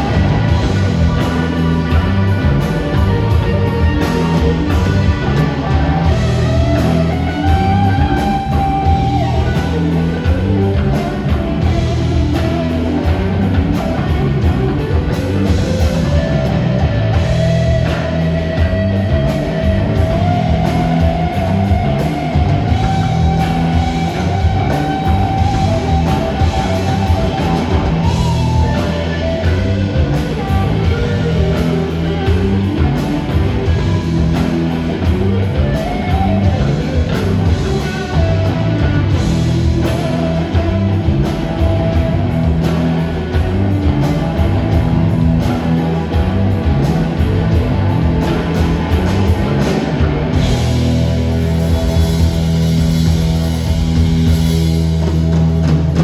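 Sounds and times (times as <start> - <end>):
live rock band: 0.0 - 56.0.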